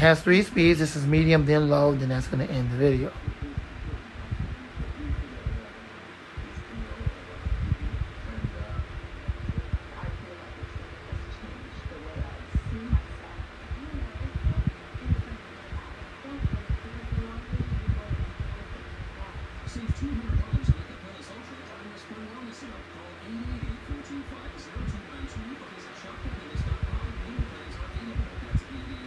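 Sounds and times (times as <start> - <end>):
electric fan whirring: 0.0 - 29.0
wind buffeting microphone: 3.1 - 5.7, 6.4 - 21.0, 26.3 - 29.0.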